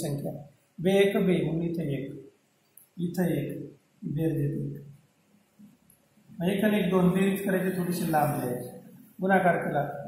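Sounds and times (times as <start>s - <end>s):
person speaking: 6.3s - 10.0s.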